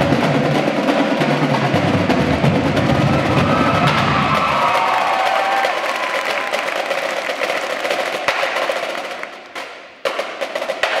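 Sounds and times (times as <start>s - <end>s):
percussion ensemble playing: 0.0s - 11.0s.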